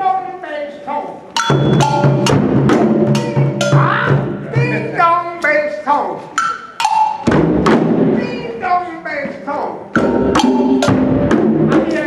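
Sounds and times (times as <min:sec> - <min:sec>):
djembe drums: 0:01.4 - 0:05.0, 0:06.4 - 0:08.5, 0:09.9 - 0:12.0
person calling: 0:02.8 - 0:06.4.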